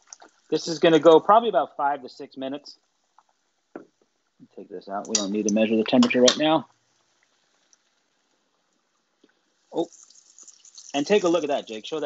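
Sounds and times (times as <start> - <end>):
fish deep-frying in oil: 0.0 - 1.2, 2.8 - 4.4, 5.0 - 12.0
oil popping: 0.0 - 1.2, 2.8 - 12.0.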